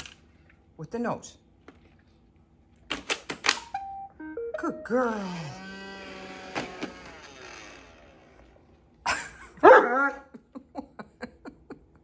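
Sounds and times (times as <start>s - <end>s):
robot vacuum motors winding down: 5.1s - 8.8s.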